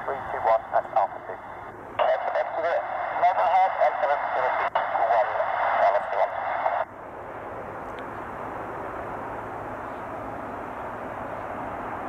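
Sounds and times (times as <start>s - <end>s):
tinny voice over radio speaker: 0.0s - 1.4s, 2.0s - 6.8s.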